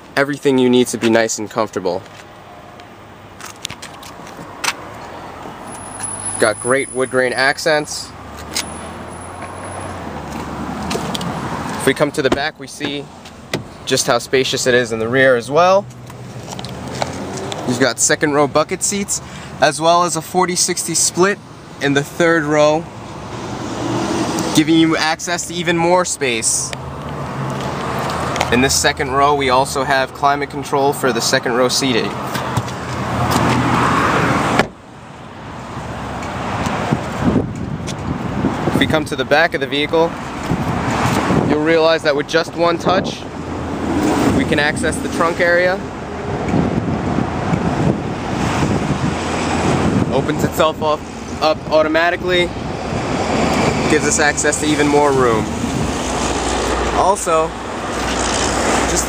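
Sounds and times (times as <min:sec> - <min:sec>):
road traffic rumble and hiss: 0:00.0 - 0:59.0.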